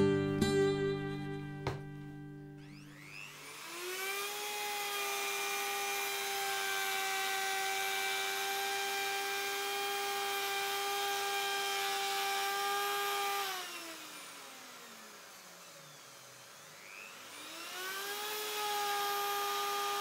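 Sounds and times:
router motor whining: 2.5 - 20.0.

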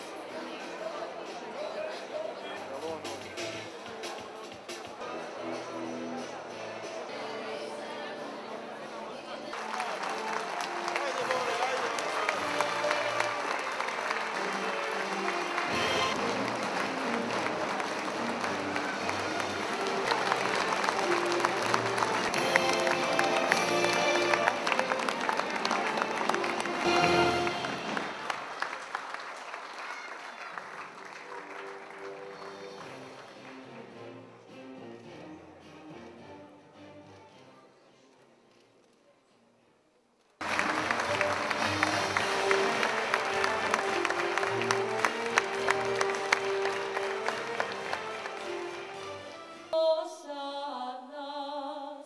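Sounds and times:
music playing: 0.0 - 28.6, 30.9 - 37.9, 40.4 - 50.2
audience applauding: 9.3 - 33.9, 40.4 - 49.5.

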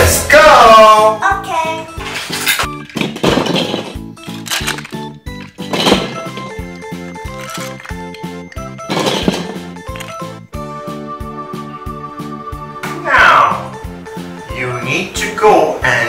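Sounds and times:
upbeat background music: 0.0 - 16.0
short rattling noises: 2.3 - 10.3.

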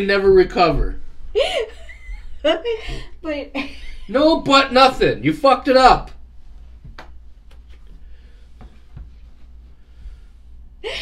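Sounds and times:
low steady hum: 0.0 - 11.0
woman gasping laugh: 1.4 - 3.2.

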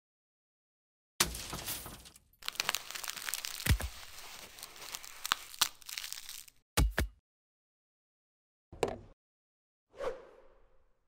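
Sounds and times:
crackling crunching rustle: 1.2 - 6.6.

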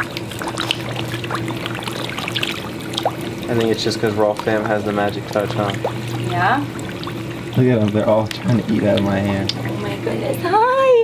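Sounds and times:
fish splashing and slurping: 0.0 - 10.9
steady low hum: 0.0 - 11.0.

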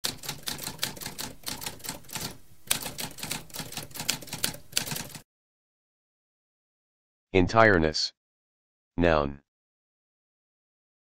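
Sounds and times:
typewriter keys typing: 0.0 - 5.2.

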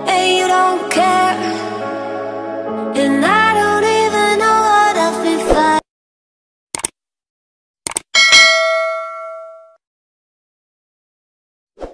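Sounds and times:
notification bell ding: 8.2 - 9.8.

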